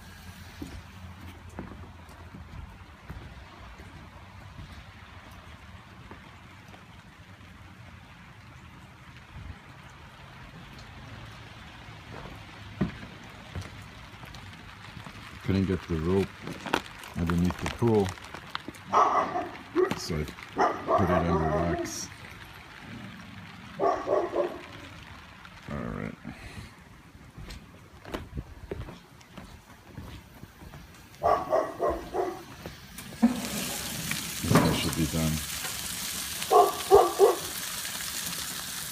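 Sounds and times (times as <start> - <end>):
food sizzling on grill: 0.0 - 1.1, 32.4 - 38.9
rain falling: 0.0 - 38.9
dog barking: 18.9 - 20.0, 20.6 - 21.9, 23.8 - 24.7, 31.2 - 32.5, 36.5 - 37.6
wind rumbling on microphone: 27.4 - 29.0.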